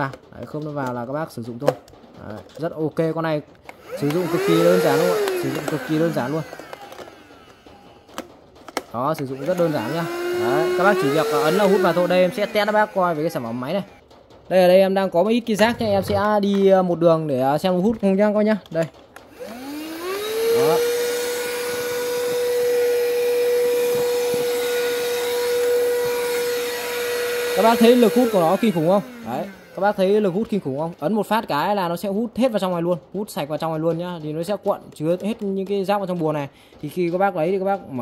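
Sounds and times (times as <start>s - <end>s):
vacuum cleaner motor whining: 3.7s - 14.0s, 19.2s - 31.0s.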